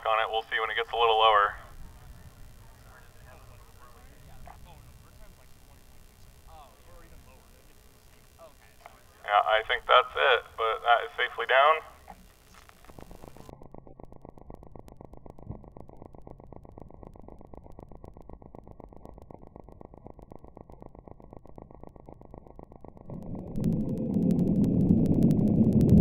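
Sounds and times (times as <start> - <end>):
low background rumble: 0.0 - 26.0
rocket motor burning: 0.0 - 26.0.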